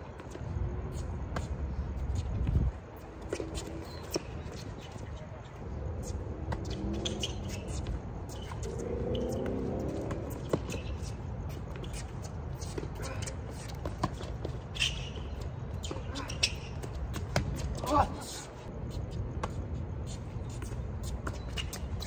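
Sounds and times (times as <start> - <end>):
shoes scuffing on court: 0.0 - 22.0.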